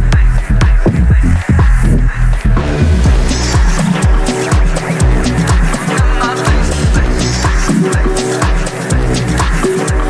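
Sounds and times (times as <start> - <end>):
four-on-the-floor kick drum: 0.0 - 10.0
electronic synth layers: 0.8 - 10.0.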